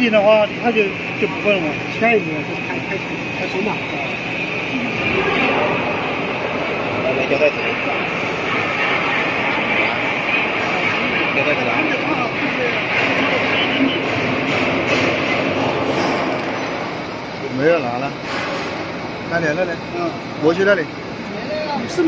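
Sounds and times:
printing machine running: 0:00.0 - 0:22.0.

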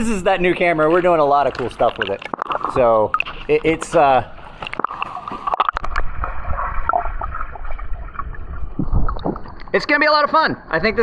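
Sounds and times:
man speaking: 0:00.0 - 0:04.3
underwater water sloshing and gurgling: 0:00.0 - 0:10.0.

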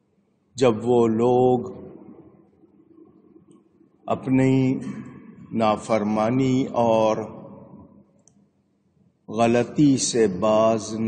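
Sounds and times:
man speaking: 0:00.6 - 0:02.0, 0:04.1 - 0:07.6, 0:09.3 - 0:11.0.

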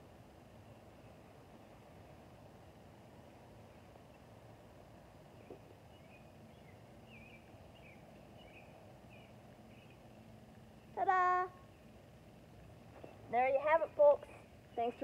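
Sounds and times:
faint birds chirping: 0:00.0 - 0:15.0.

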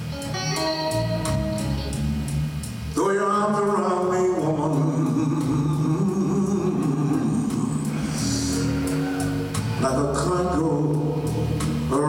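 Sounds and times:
bass: 0:00.0 - 0:12.0
drums: 0:00.0 - 0:12.0
electric guitar lines: 0:00.0 - 0:12.0.

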